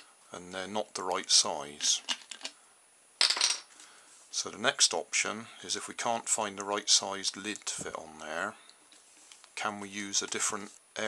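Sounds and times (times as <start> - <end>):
plastic bottle caps clattering on wood: 1.8 - 2.6, 3.2 - 3.7.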